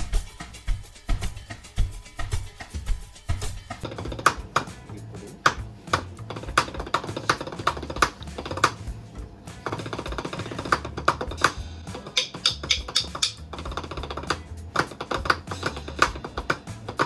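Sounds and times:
background music: 0.0s - 17.0s
drumsticks tapping on practice pad: 1.2s - 17.0s.

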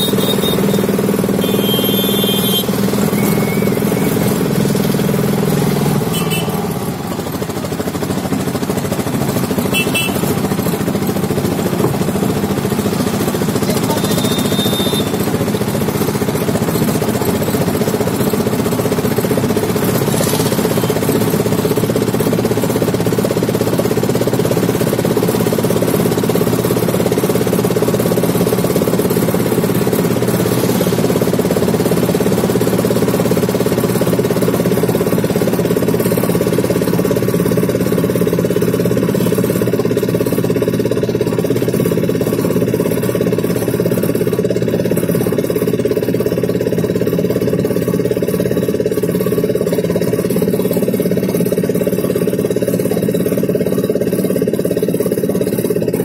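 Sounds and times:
road noise: 0.0s - 54.4s
vehicle engine droning: 0.0s - 56.0s.

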